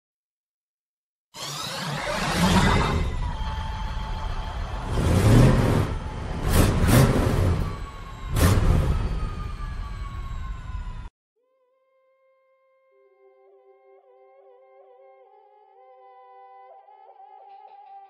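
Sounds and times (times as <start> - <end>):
faint falling tones: 2.6 - 11.1.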